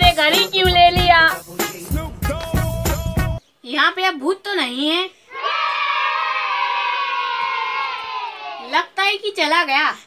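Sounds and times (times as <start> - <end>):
speech: 8.6 - 10.0.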